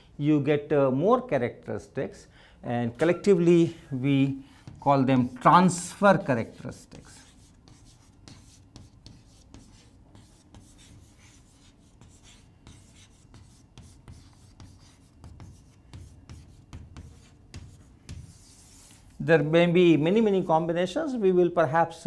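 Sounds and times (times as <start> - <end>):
chalk tapping and scratching on chalkboard: 4.5 - 19.3.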